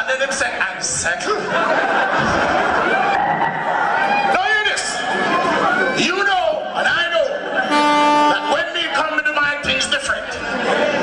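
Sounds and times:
long held note: 7.7s - 8.5s.

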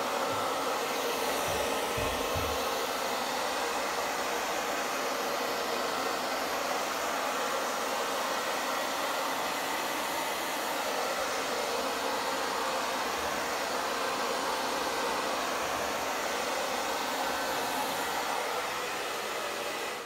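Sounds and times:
blow dryer running: 0.0s - 20.0s.

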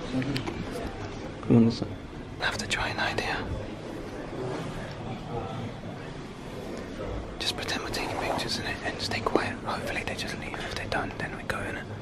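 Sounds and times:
faint room hum: 0.0s - 12.0s
person whispering: 7.4s - 12.0s.

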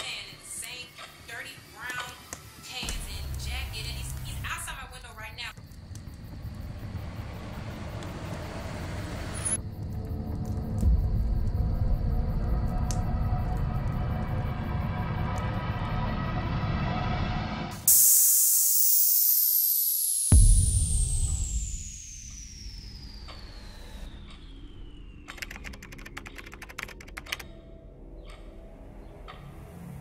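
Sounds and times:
low rumbling drone: 5.7s - 18.0s
falling whistle-like tone: 14.8s - 25.7s
loud hiss: 17.8s - 23.3s
deep hit: 20.4s - 23.1s.

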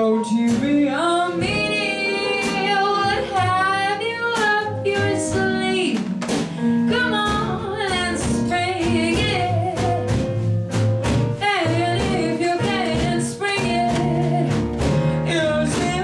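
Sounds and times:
bass: 0.0s - 16.0s
drums swing beat: 0.0s - 16.0s
piano: 0.0s - 16.0s.

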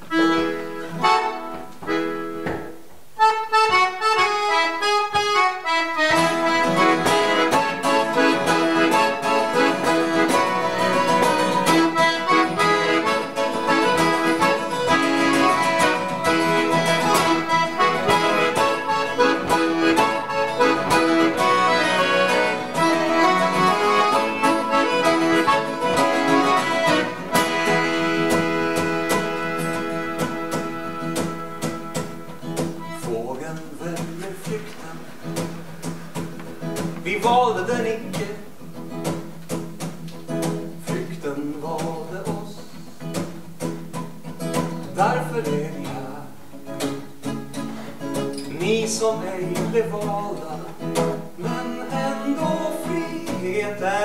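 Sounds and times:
accordion chords: 0.0s - 54.0s
acoustic guitar strumming: 0.0s - 54.0s.

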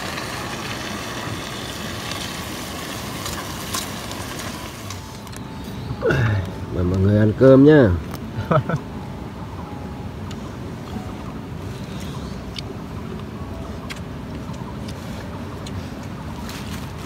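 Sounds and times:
outdoor background noise: 0.0s - 17.0s.

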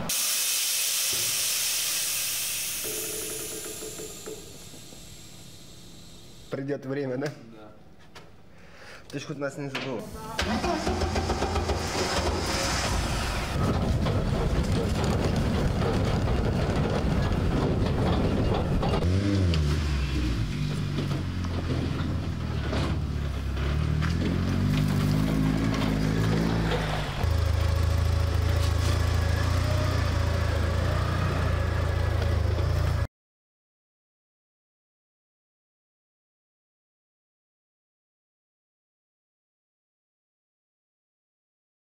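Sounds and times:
car engine revving: 10.4s - 33.0s.

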